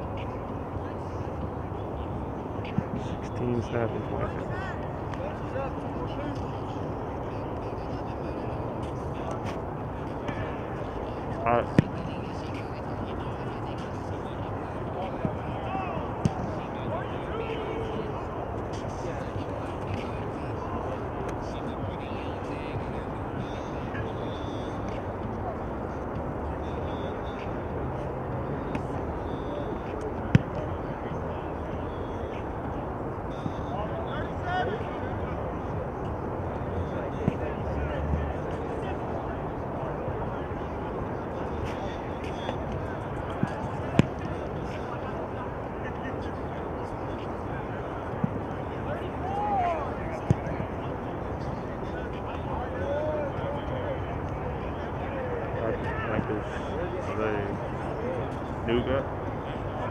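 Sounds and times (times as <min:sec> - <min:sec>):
distant voices: 0:00.0 - 0:59.9.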